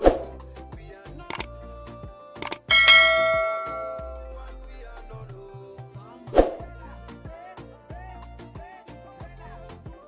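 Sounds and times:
background music: 0.0 - 10.0
mouse clicks: 2.4 - 2.7
bright bell chime: 2.4 - 4.4.

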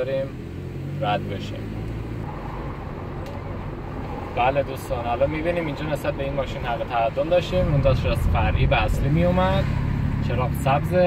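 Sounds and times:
car engine and tyre rumble: 0.0 - 11.0.

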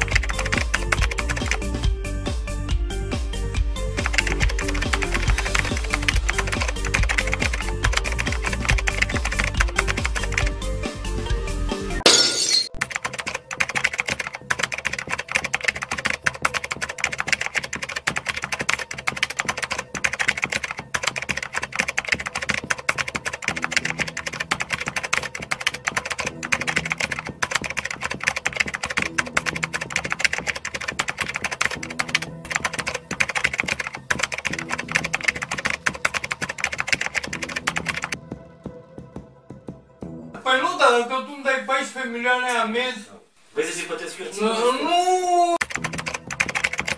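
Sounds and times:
rapid keystroke clicks: 0.0 - 1.8, 4.0 - 10.5, 12.8 - 38.2, 45.6 - 46.9.

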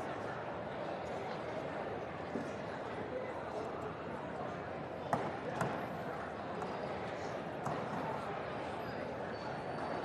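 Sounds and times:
murmur of many people talking: 0.0 - 10.0.

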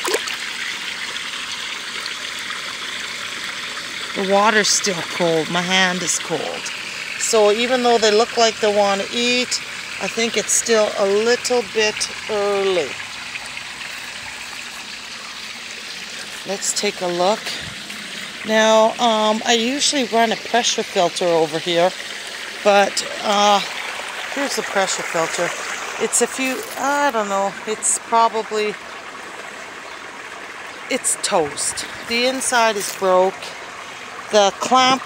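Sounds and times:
pond water trickling and splashing: 0.0 - 35.0.

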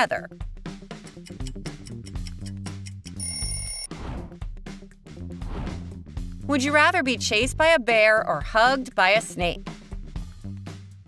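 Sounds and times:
background music with a beat: 0.3 - 3.6, 4.4 - 6.5, 9.5 - 11.0
bright bell-like ring: 3.2 - 3.9.

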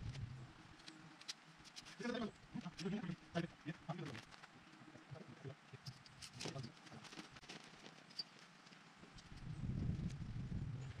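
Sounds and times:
tent poles and fabric rustling: 0.0 - 11.0.

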